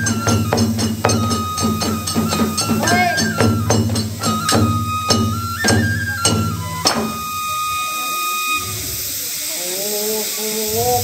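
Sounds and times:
bamboo flute long high note: 0.0s - 11.0s
steady hiss: 0.0s - 11.0s.

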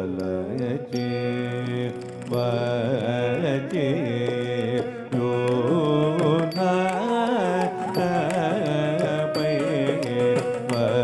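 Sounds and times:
person singing ornamented phrase: 0.0s - 11.0s.

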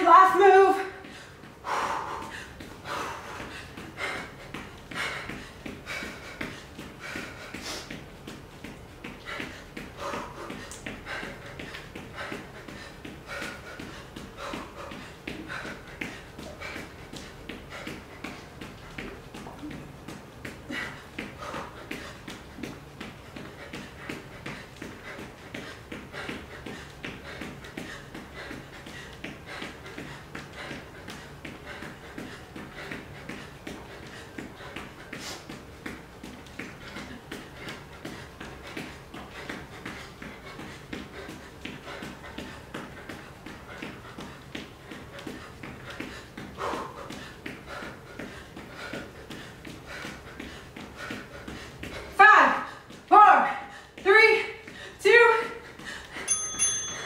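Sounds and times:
hard breathing: 0.8s - 57.0s.

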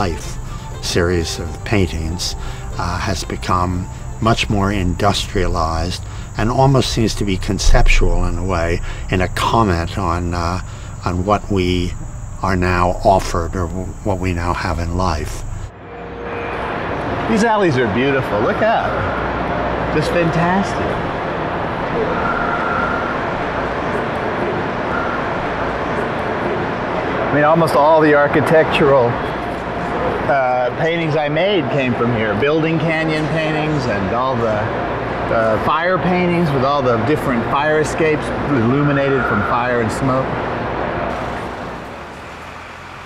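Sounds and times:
traffic rumble: 0.0s - 43.0s.

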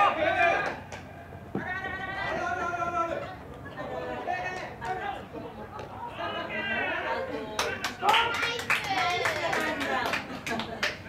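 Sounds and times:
players calling out: 0.0s - 10.0s
sharp claps: 7.6s - 11.0s.

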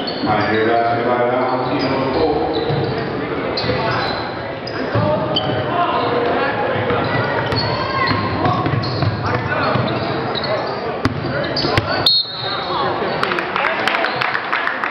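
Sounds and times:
sneakers squeaking: 0.0s - 13.3s
crowd voices: 0.0s - 14.9s.

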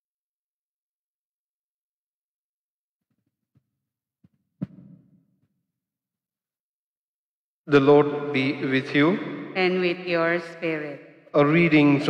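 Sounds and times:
sharp thump: 4.6s - 5.2s.

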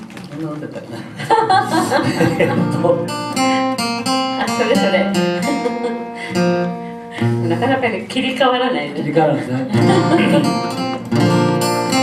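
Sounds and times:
acoustic guitar: 0.0s - 12.0s
performers chuckling: 0.8s - 3.0s, 4.4s - 6.5s, 9.6s - 11.1s.

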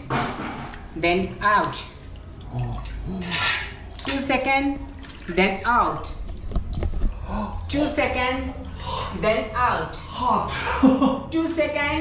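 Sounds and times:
liquid splashing and dripping: 0.0s - 7.8s.

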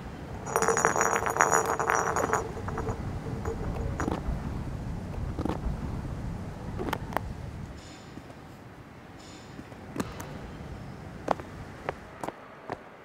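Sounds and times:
rapid clattering rattle: 0.4s - 4.2s.

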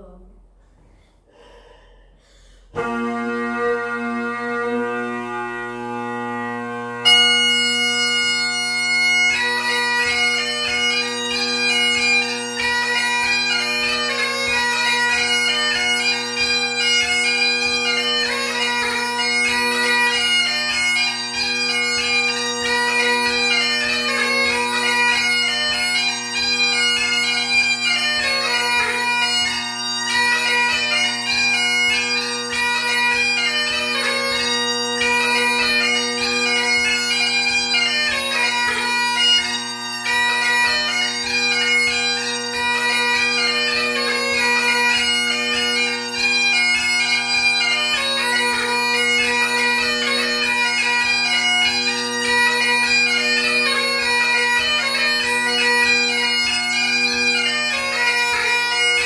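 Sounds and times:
bagpipe drones: 2.4s - 59.0s
bagpipe melody: 2.4s - 59.0s.

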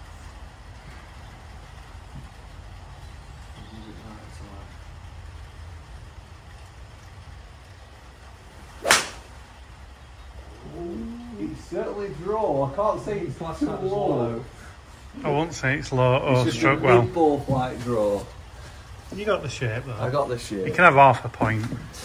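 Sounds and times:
golf club striking ball: 8.8s - 9.4s.

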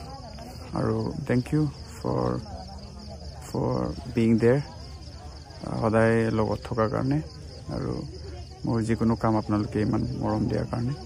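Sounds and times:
chorus of night insects: 0.0s - 11.0s.

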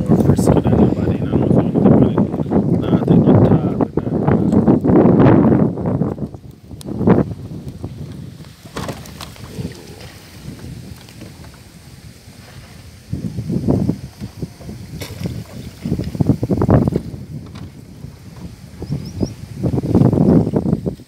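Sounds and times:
wind buffeting microphone: 0.0s - 21.0s
river water washing: 3.7s - 21.0s.

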